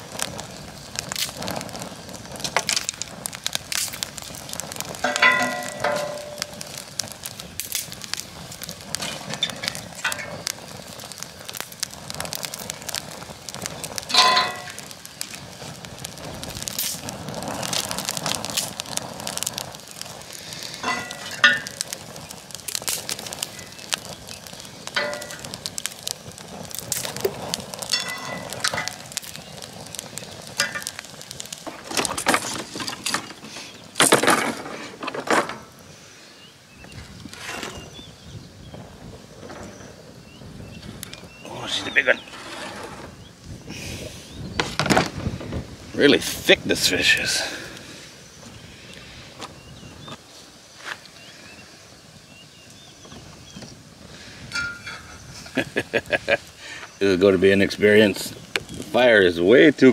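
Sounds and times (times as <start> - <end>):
wood fire crackling: 0.0 - 59.9.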